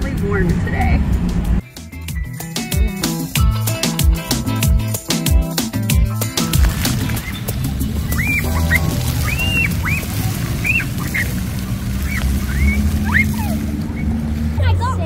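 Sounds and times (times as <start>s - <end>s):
music: 0.0s - 11.3s
fountain spray rumble: 6.2s - 14.9s
children squealing: 7.1s - 14.2s.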